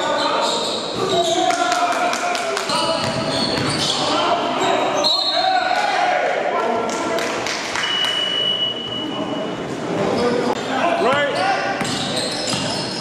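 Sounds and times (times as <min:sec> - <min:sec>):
players' voices: 0:00.0 - 0:07.5, 0:09.0 - 0:13.0
sneaker squeaks: 0:00.1 - 0:01.6, 0:02.7 - 0:05.5, 0:11.1 - 0:13.0
basketball bouncing on gym floor: 0:02.8 - 0:03.8.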